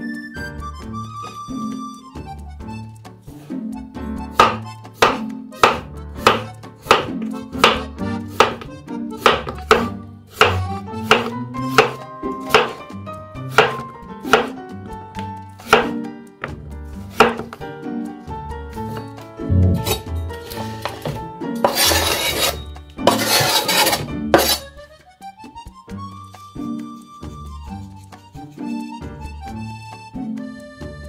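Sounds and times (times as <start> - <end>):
background music: 0.0 - 31.0
knife chopping on wooden board: 4.4 - 12.9, 13.5 - 14.6, 15.6 - 17.6, 18.9 - 24.6.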